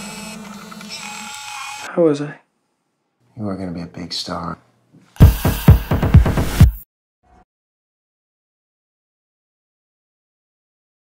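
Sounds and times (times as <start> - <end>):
man speaking: 3.3 - 4.7.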